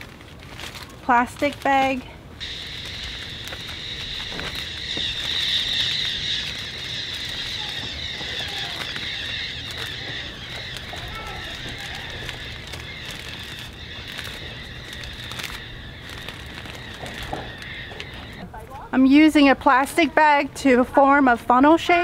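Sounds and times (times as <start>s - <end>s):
plastic bag rustling: 0.0s - 18.4s
high-pitched animal chorus: 2.4s - 18.4s.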